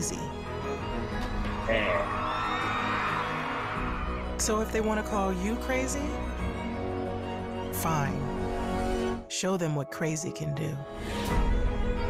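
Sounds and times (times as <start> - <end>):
background music: 0.0 - 12.0
arena crowd cheering and whooping: 1.7 - 4.4.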